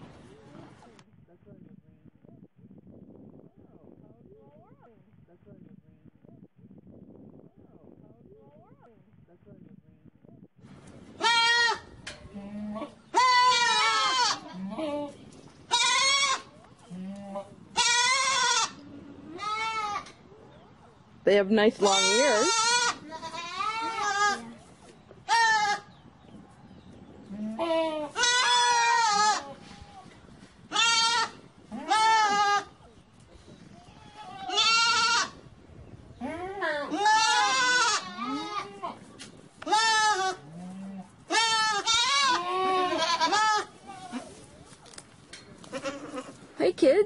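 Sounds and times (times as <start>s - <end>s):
young goats bleating: 11.2s - 20.1s, 21.8s - 24.6s, 25.2s - 26.0s, 27.2s - 32.8s, 33.7s - 35.4s, 36.2s - 44.4s, 45.6s - 46.4s.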